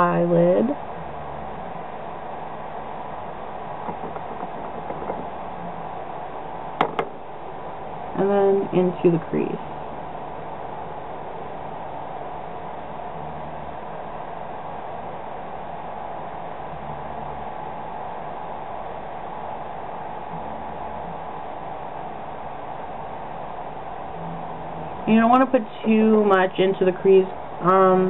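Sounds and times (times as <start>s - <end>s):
faint hum: 0.0s - 28.0s.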